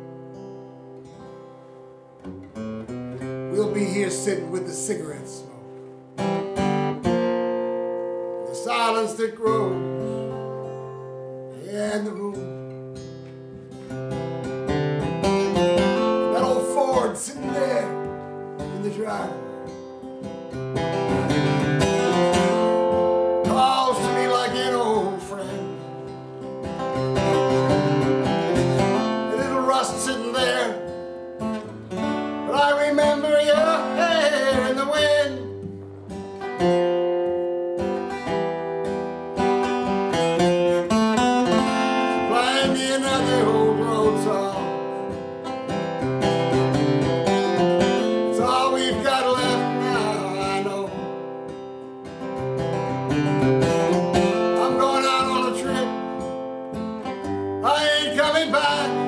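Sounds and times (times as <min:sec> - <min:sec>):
acoustic guitar chords: 0:00.0 - 0:59.0.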